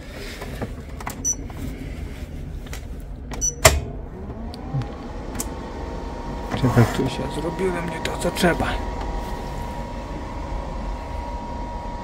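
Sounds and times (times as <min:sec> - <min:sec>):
rising whine to steady tone: 0:04.0 - 0:12.0.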